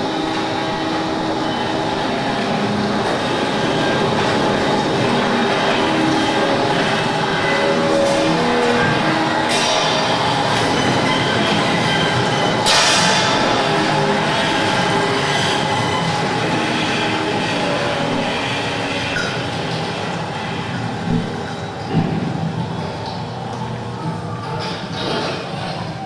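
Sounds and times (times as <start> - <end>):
rumbling noise drone: 0.0 - 26.0.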